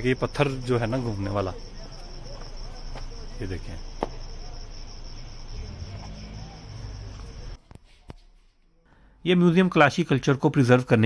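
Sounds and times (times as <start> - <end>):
insects trilling: 0.0 - 7.6.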